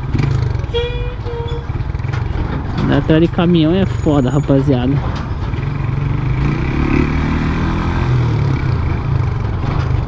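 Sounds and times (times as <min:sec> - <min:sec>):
motorcycle engine low rumble: 0:00.0 - 0:10.0
short squeal-like tone: 0:00.7 - 0:01.8.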